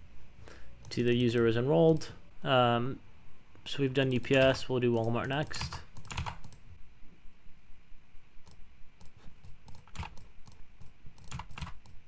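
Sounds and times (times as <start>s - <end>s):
typing on a computer keyboard: 4.1s - 6.6s, 8.5s - 12.0s.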